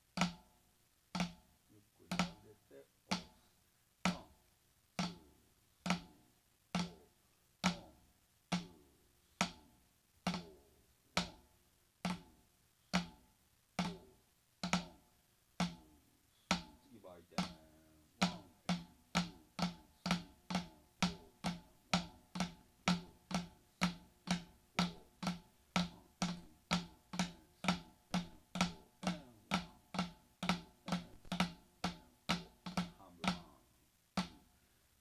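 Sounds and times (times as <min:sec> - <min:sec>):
drumsticks striking practice board: 0:00.2 - 0:00.5, 0:01.2 - 0:01.5, 0:02.1 - 0:02.5, 0:03.1 - 0:03.4, 0:04.0 - 0:04.4, 0:05.0 - 0:06.2, 0:06.8 - 0:07.0, 0:07.6 - 0:08.8, 0:09.4 - 0:10.6, 0:11.2 - 0:15.0, 0:15.6 - 0:15.9, 0:16.5 - 0:33.6, 0:34.2 - 0:34.5.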